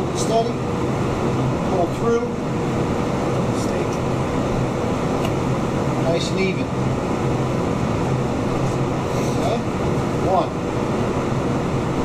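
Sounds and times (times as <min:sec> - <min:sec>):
ventilation hum: 0:00.0 - 0:12.0.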